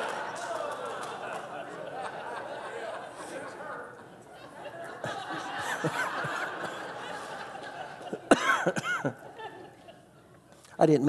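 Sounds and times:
congregation laughing and murmuring: 0:00.0 - 0:11.0
man laughing loudly: 0:05.0 - 0:07.2.

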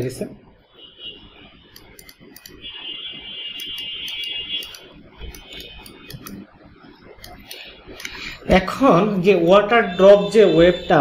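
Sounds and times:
high-pitched whine: 0:00.0 - 0:11.0
computer mouse clicking: 0:01.7 - 0:02.6, 0:03.6 - 0:06.5, 0:07.1 - 0:08.2.

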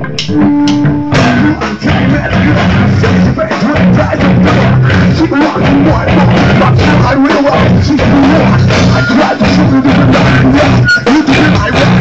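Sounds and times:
drums: 0:00.0 - 0:12.0
electric guitar through amplifier: 0:00.0 - 0:12.0.

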